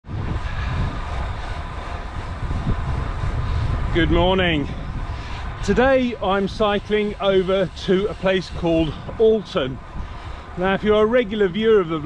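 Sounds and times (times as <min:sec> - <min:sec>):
road noise: 0:00.0 - 0:12.0
wind buffeting microphone: 0:00.0 - 0:12.0.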